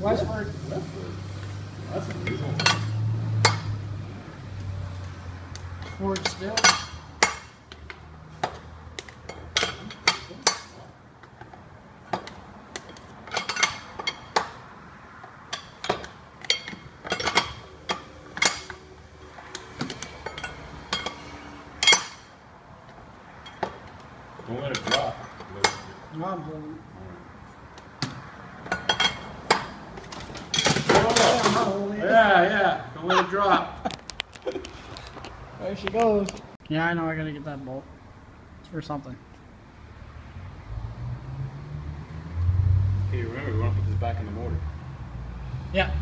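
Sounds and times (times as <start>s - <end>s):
wrench and metal parts clinking: 2.0s - 3.7s, 5.8s - 8.0s, 9.1s - 10.8s, 12.1s - 14.5s, 15.5s - 22.3s, 28.6s - 31.7s.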